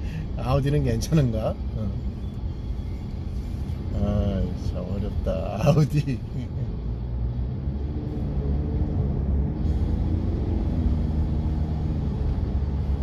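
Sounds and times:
car road and engine rumble: 0:00.0 - 0:13.0.

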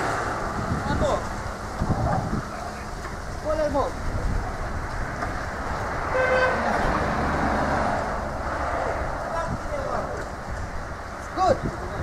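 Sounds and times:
street traffic: 0:00.0 - 0:12.0
vehicle horn toot: 0:06.1 - 0:06.8.

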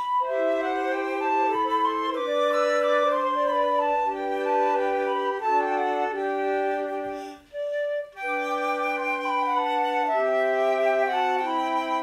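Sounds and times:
flutes playing in harmony: 0:00.0 - 0:12.0.

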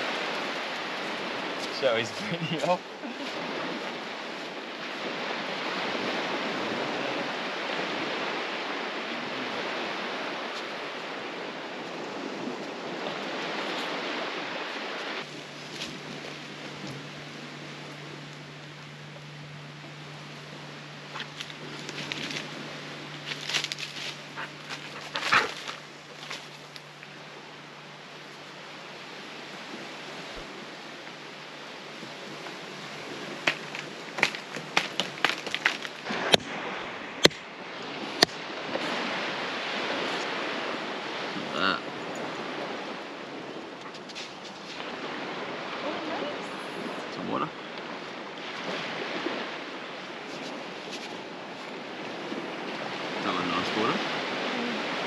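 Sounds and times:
surf and wind on beach: 0:00.0 - 0:55.0.

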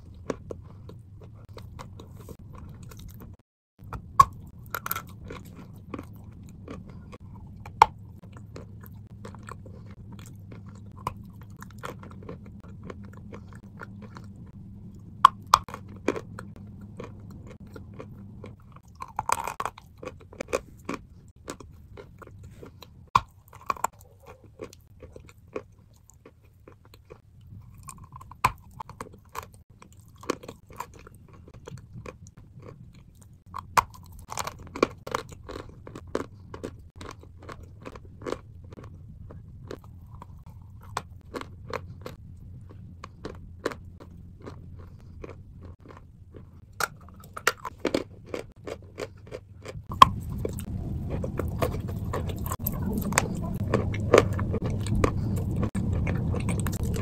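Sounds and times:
low hum: 0:00.0 - 0:24.6, 0:49.8 - 0:57.0
crunching and chewing chalk: 0:00.0 - 0:57.0.

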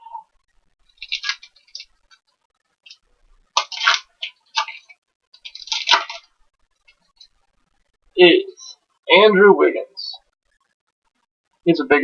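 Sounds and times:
plastic foil wrapper crinkling: 0:00.9 - 0:02.1, 0:03.6 - 0:06.4.

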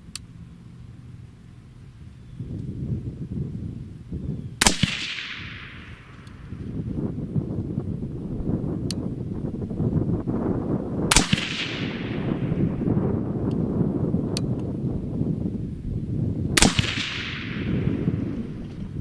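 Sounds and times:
suppressed rifle shots: 0:04.6 - 0:06.7, 0:11.1 - 0:12.8, 0:16.6 - 0:18.9.

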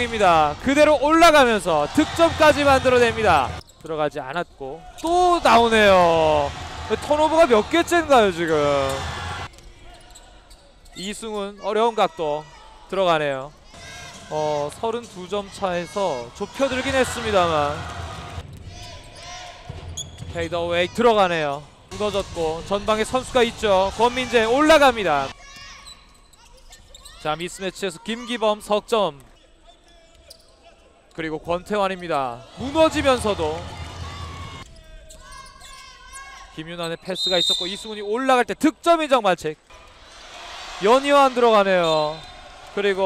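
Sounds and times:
court ambience: 0:00.0 - 0:04.0, 0:04.8 - 0:11.4, 0:31.1 - 0:34.8.

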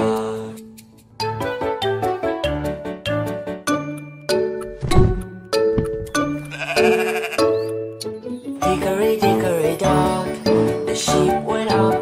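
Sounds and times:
children's song music: 0:00.0 - 0:12.0
sheep bleating: 0:06.4 - 0:07.7.

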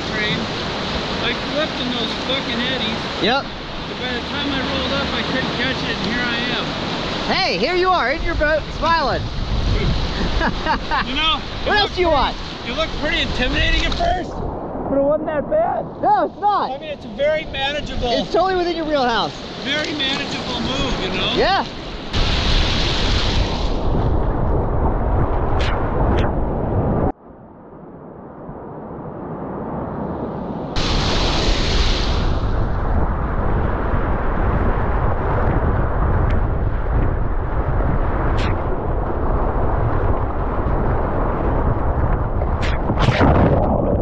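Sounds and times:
whitewater rapids rushing: 0:00.0 - 0:09.1, 0:18.0 - 0:23.5
water spraying on microphone: 0:30.8 - 0:32.7.

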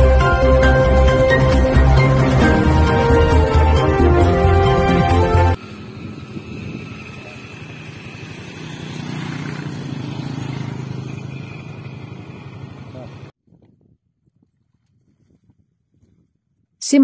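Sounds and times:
loud intro music: 0:00.0 - 0:05.6
motorcycle engine passing: 0:00.0 - 0:13.3.

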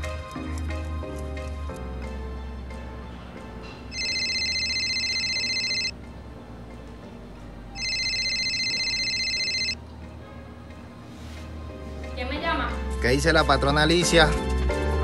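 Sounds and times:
faint background music: 0:00.0 - 0:15.0
electronic telephone ringing: 0:03.9 - 0:06.0, 0:07.8 - 0:09.8.

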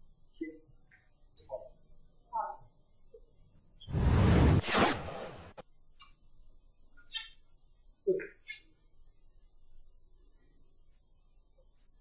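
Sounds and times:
loud swoosh: 0:03.9 - 0:05.6.

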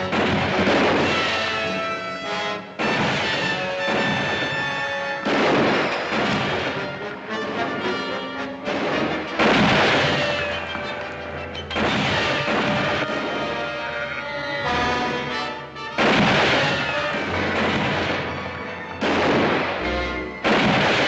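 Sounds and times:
rifle shots: 0:00.0 - 0:02.2, 0:02.8 - 0:07.8, 0:08.7 - 0:13.9, 0:15.9 - 0:21.0
orchestral film score: 0:00.0 - 0:21.0.

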